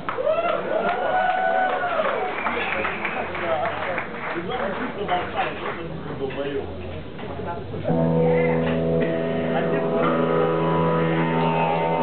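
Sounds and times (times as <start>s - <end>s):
blues band sustained chord: 7.6s - 12.0s.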